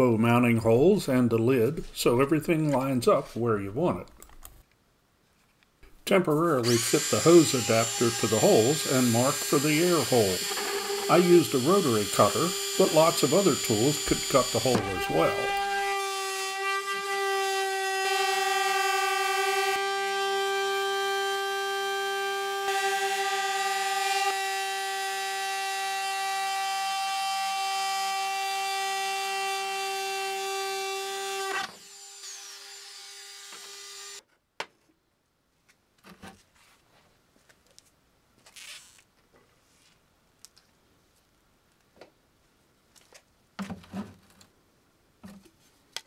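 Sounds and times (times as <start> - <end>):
rotary cutter whining: 6.6 - 34.2
bit cutting plastic: 6.7 - 16.0.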